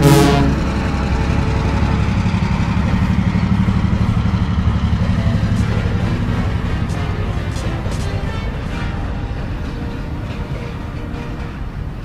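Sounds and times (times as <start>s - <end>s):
closing musical chord: 0.0s - 12.0s
diesel engine throbbing: 0.0s - 12.0s.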